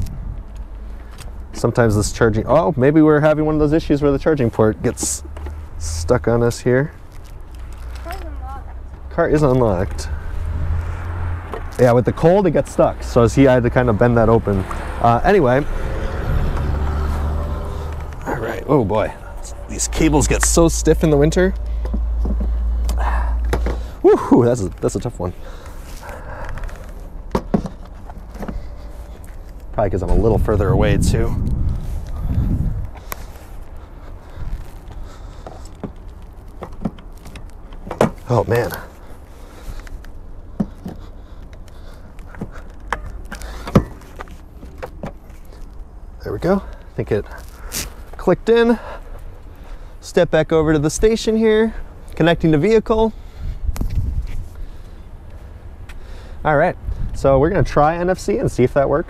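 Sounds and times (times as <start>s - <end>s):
low steady rumble: 0.0s - 47.7s.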